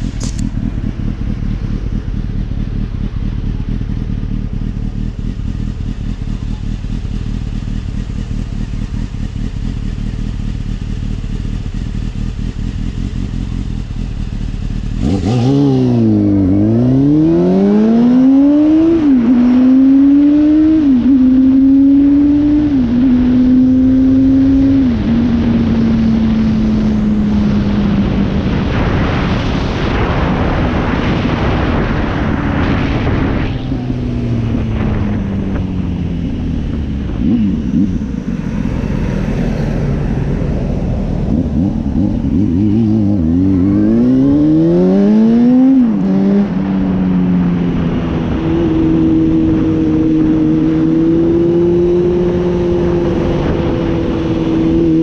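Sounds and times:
motorcycle engine accelerating: 0:00.0 - 0:55.0
wind noise on microphone: 0:11.0 - 0:55.0.

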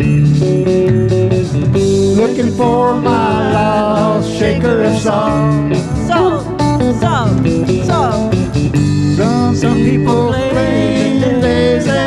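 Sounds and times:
electric bass: 0:00.0 - 0:12.0
electric guitar: 0:00.0 - 0:12.0
pedal steel guitar: 0:00.0 - 0:12.0
steady drum beat: 0:00.0 - 0:12.0.

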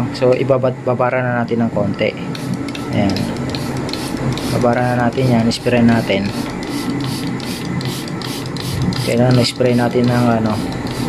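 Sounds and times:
trigger spray bottle spritzing: 0:02.3 - 0:11.0.

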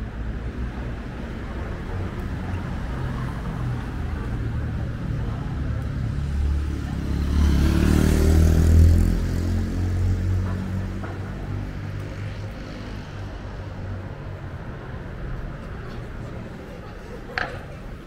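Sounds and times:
vehicle engine rumbling past: 0:06.1 - 0:14.2.

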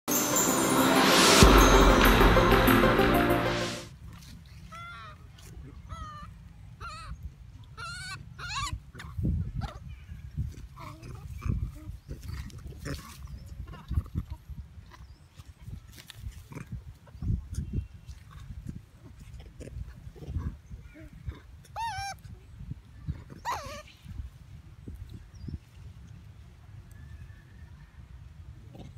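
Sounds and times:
infant monkey squealing: 0:07.8 - 0:08.8, 0:21.8 - 0:22.2, 0:23.3 - 0:23.9.

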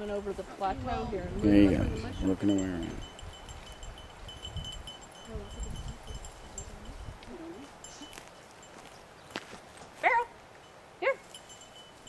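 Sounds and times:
wind rumble on microphone: 0:00.0 - 0:08.3
small bell tinkling: 0:01.5 - 0:09.0, 0:10.6 - 0:12.0.

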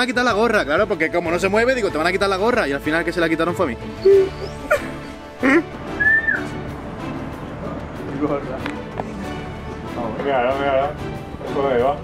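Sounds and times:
background music: 0:00.0 - 0:12.0
young man laughing: 0:04.0 - 0:05.7.

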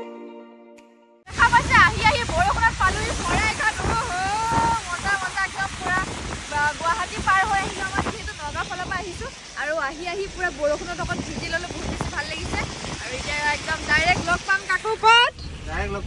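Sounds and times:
wind rushing over microphone: 0:01.3 - 0:16.0.

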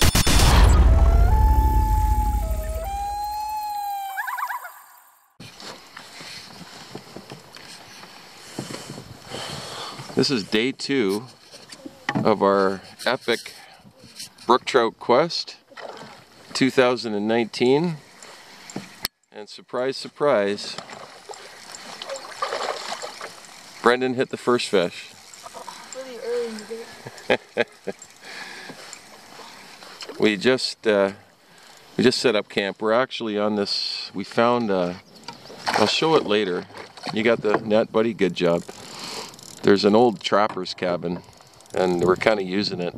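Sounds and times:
deep rumble: 0:00.0 - 0:03.4
long wailing call: 0:00.7 - 0:05.3
water lapping against a canoe: 0:05.8 - 0:10.2, 0:15.6 - 0:16.8, 0:20.4 - 0:30.3, 0:35.2 - 0:39.4.

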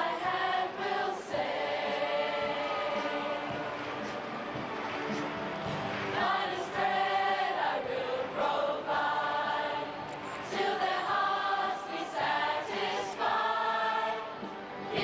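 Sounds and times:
group singing in chorus: 0:00.0 - 0:04.6, 0:05.3 - 0:15.0.

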